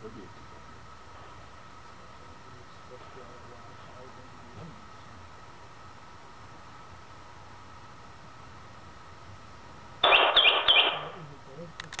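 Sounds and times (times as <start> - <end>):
distorted bird song: 10.0 - 11.2
sharp clicks: 11.8 - 12.0.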